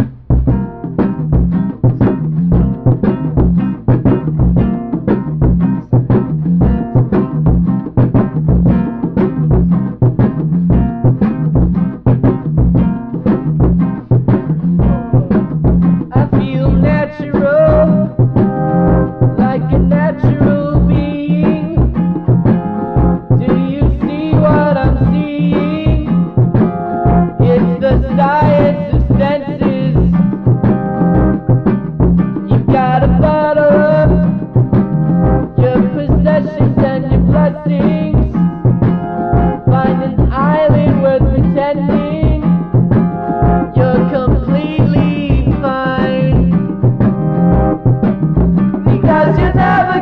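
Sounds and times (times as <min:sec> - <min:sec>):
rock song with drums and bass: 0:00.0 - 0:50.0
person singing: 0:14.8 - 0:22.1, 0:23.2 - 0:30.4, 0:32.4 - 0:34.7, 0:35.4 - 0:38.6, 0:39.5 - 0:42.8, 0:43.6 - 0:46.8, 0:48.8 - 0:50.0.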